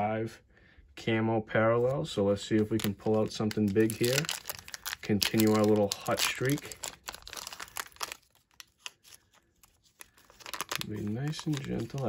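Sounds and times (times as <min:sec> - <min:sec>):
paper crackles: 0:02.5 - 0:12.0
paper envelope crinkling: 0:02.5 - 0:12.0.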